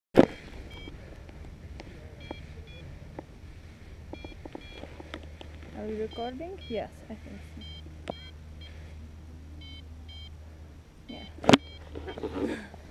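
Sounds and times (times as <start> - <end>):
short electronic beeps: 0.2 - 1.0, 2.2 - 2.9, 4.2 - 5.0, 5.8 - 8.8, 9.6 - 10.4, 11.1 - 12.5
low steady hum: 0.2 - 12.9
clicks: 4.1 - 5.8.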